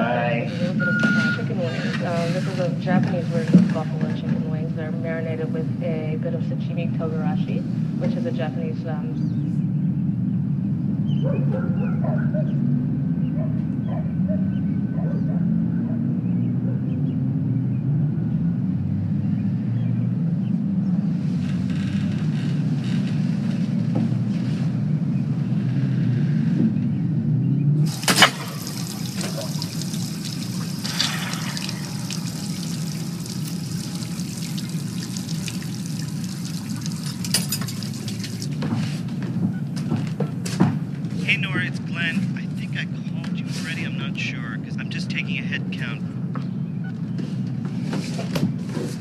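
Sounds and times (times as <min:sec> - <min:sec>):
running water hissing: 0:27.9 - 0:40.2.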